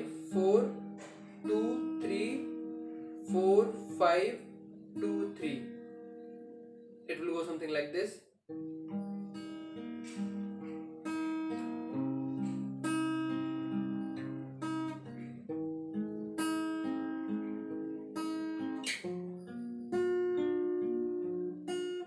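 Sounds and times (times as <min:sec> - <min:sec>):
fingerpicked acoustic guitar: 0:00.0 - 0:22.0.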